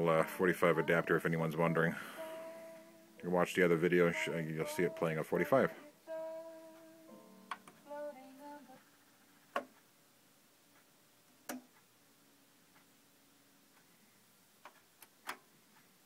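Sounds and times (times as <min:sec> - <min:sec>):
faint music from a vinyl record: 0:00.0 - 0:16.0
sharp record clicks: 0:10.7 - 0:11.9, 0:14.6 - 0:15.9.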